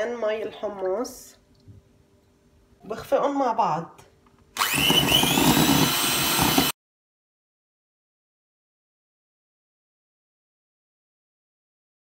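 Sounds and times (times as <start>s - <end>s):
electric hand mixer whirring: 4.6s - 6.8s.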